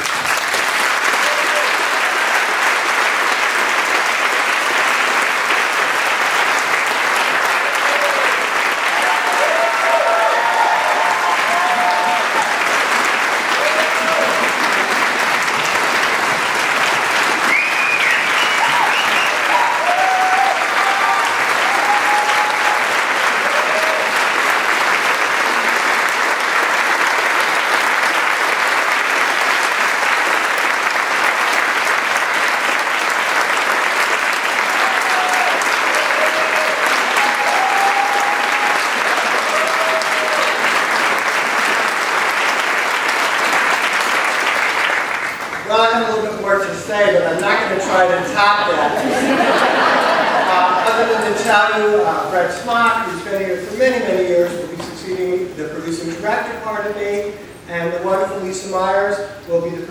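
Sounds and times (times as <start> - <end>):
audience applauding: 0.0 - 46.7, 47.4 - 55.5
cheers and calls: 1.0 - 2.4, 7.4 - 14.8, 17.4 - 24.5, 34.4 - 41.1.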